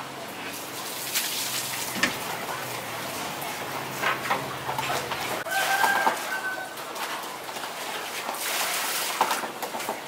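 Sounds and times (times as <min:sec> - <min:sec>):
water splashing in a pot: 0:00.5 - 0:02.4, 0:05.4 - 0:10.0
rooster crowing: 0:05.4 - 0:06.8.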